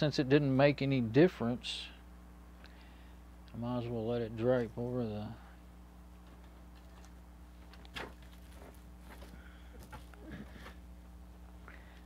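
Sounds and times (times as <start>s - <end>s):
low electrical buzz: 0.0s - 12.0s
handling rustles: 6.2s - 10.9s.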